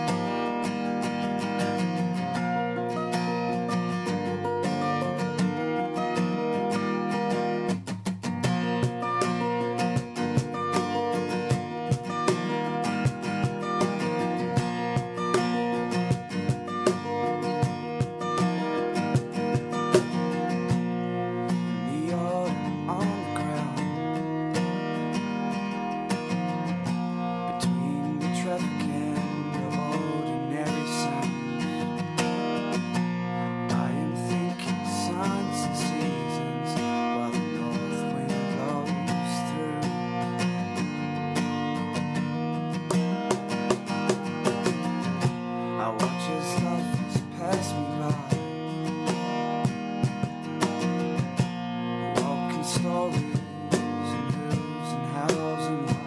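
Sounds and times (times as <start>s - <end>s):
acoustic guitars strummed: 0.0s - 56.0s
man singing: 21.7s - 24.3s, 27.2s - 32.0s, 33.4s - 40.4s, 45.6s - 49.3s, 52.0s - 56.0s.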